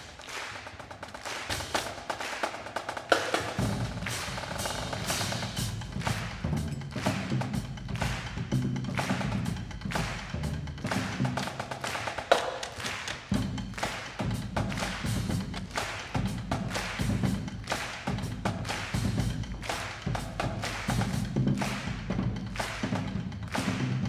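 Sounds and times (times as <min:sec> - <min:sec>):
percussion ensemble music: 0:00.0 - 0:24.0.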